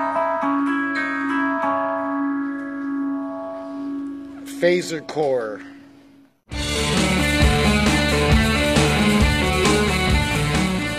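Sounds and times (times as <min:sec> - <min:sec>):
electric guitar note through phaser: 0:06.5 - 0:10.9.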